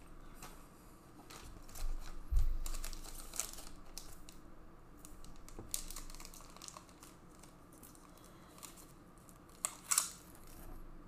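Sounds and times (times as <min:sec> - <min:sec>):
plastic crinkles: 0:01.2 - 0:04.4, 0:05.0 - 0:10.8
plastic packaging rustling: 0:01.2 - 0:04.4, 0:05.0 - 0:10.8.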